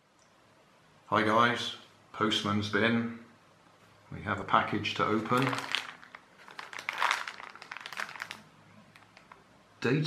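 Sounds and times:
plastic mailing bag crinkling: 5.0s - 9.4s.

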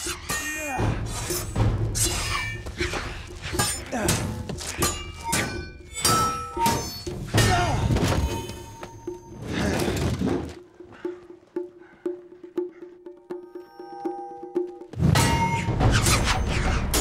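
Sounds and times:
swords clashing: 0.0s - 8.7s
film score music: 0.0s - 17.0s.

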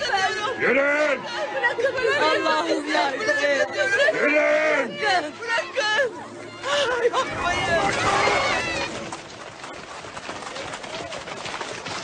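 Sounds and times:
people crying out: 0.0s - 9.2s
crowd murmur: 0.0s - 12.0s.

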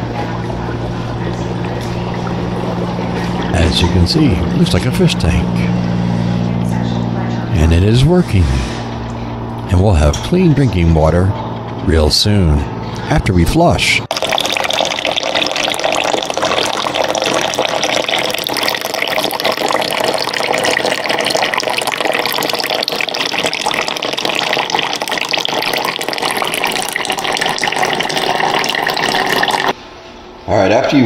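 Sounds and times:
water pouring into container: 14.1s - 29.8s.

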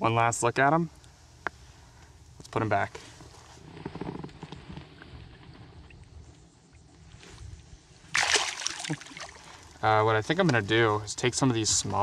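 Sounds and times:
fish splashing in water: 8.1s - 9.8s
water sloshing: 8.1s - 9.8s.

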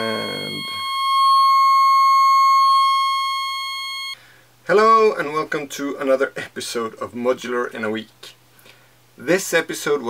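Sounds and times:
high buzzy synth tone: 0.0s - 4.2s.

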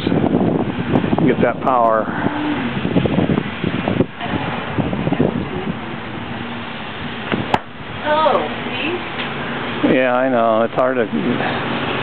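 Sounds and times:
noisy outdoor background: 0.0s - 12.0s
golf club striking ball: 7.3s - 7.8s.

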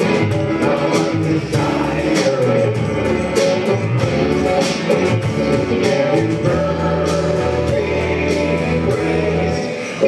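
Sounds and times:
voices singing: 0.0s - 10.0s
worship band playing: 0.0s - 10.0s.

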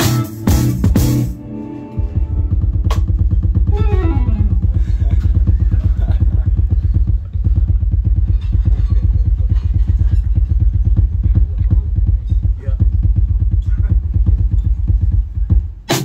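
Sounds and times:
electric guitar: 0.0s - 5.6s
electric bass: 0.0s - 15.8s
drum kit: 0.0s - 16.0s
sliding note falling in pitch: 3.7s - 4.8s.

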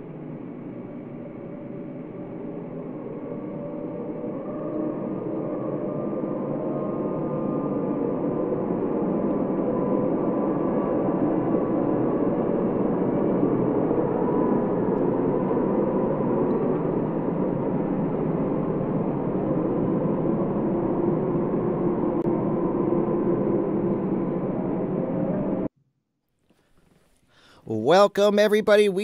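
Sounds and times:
dense ambient drone: 0.0s - 25.7s.

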